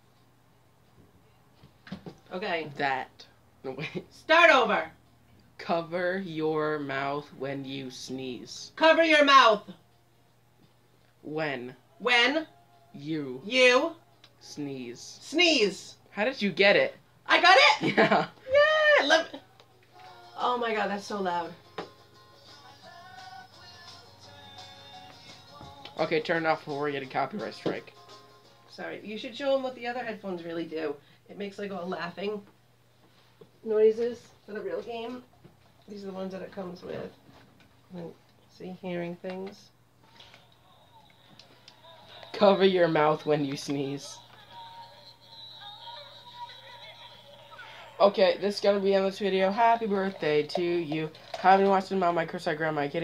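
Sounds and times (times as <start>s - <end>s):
faint music leaking from headphones: 3.9s - 17.6s, 18.3s - 53.0s.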